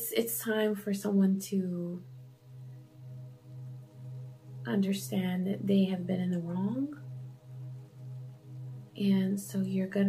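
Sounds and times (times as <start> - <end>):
soft ambient music: 0.0 - 10.0.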